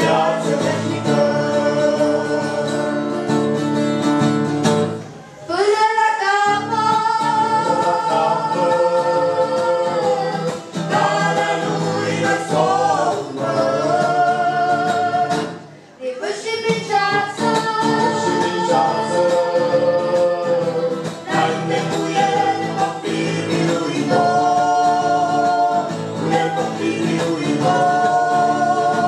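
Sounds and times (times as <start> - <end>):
group singing: 0.0 - 3.5, 5.5 - 29.0.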